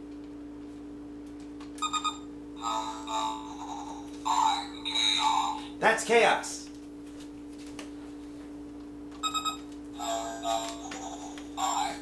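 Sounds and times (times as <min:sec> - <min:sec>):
low electronic hum: 0:00.0 - 0:12.0
toy robot electronic beep: 0:01.8 - 0:03.4, 0:09.2 - 0:12.0.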